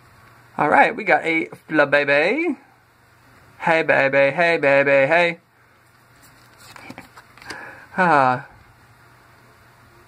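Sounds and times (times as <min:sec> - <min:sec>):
cards rustling: 0:05.9 - 0:07.7.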